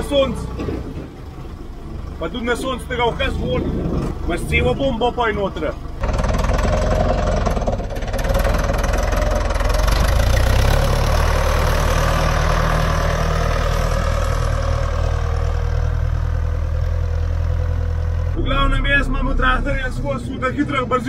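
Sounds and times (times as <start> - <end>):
tractor diesel engine running: 0.0 - 21.0.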